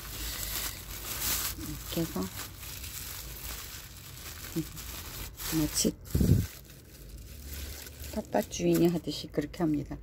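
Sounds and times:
plastic sheet crinkling: 0.0s - 9.8s.

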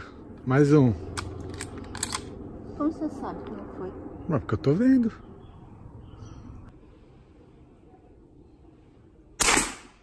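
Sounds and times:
air rifle shot crack: 9.4s - 10.0s.

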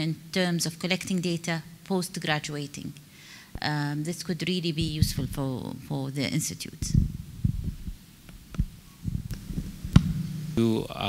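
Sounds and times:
microphone knocking on table: 4.8s - 5.3s, 8.6s - 10.3s
microphone handling thuds and rubbing: 4.8s - 5.5s, 6.8s - 10.4s.

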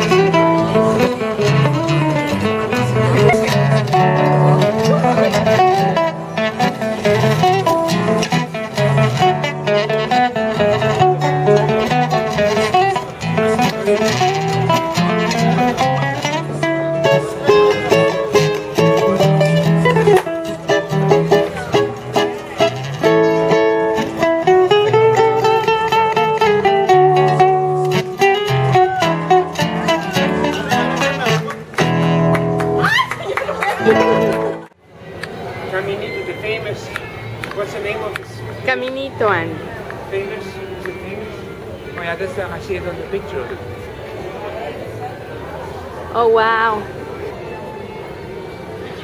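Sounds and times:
acoustic guitar tango: 0.0s - 34.8s.

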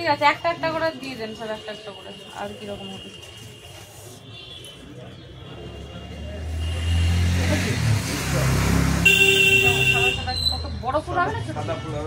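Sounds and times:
vehicle passing on street: 4.9s - 12.0s.

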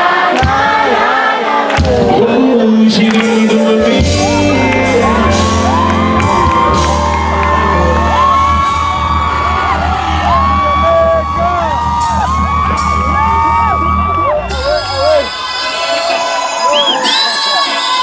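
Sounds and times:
live hip-hop music: 0.0s - 18.0s
voices singing and whooping: 3.4s - 18.0s.

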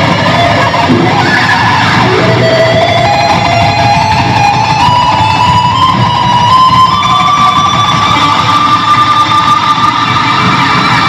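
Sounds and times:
electric guitar solo: 0.0s - 11.0s.

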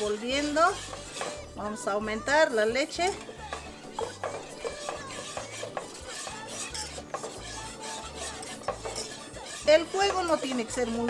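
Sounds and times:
whisk scraping and clicking in pot: 0.0s - 11.0s.

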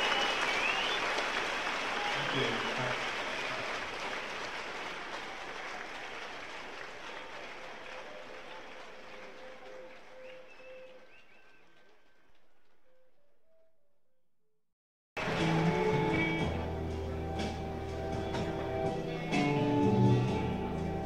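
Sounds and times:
audience applause: 0.0s - 12.7s, 15.2s - 16.7s.

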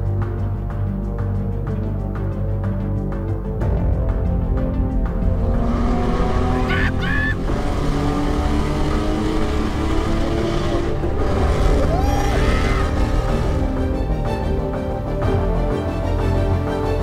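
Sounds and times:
background music: 0.0s - 17.0s
car engine: 4.2s - 15.6s.

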